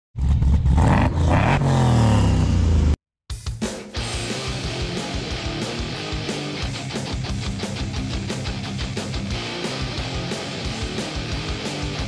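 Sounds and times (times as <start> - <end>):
car engine revving: 0.2 - 3.0
music with drum beat: 3.3 - 12.0.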